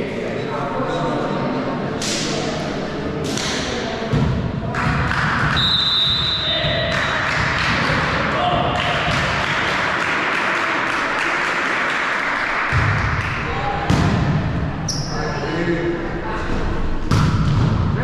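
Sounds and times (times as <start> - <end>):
referee whistle blast: 5.6 - 6.8.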